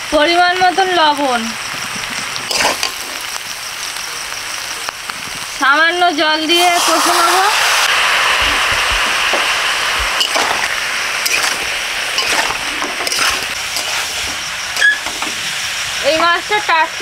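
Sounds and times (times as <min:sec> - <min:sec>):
water sizzling in hot oil: 0:00.0 - 0:17.0
metal spatula scraping pan: 0:02.5 - 0:03.2, 0:10.2 - 0:15.5.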